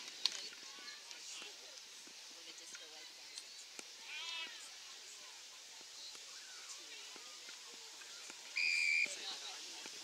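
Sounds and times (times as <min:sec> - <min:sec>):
pea whistle blast: 0:08.6 - 0:09.2.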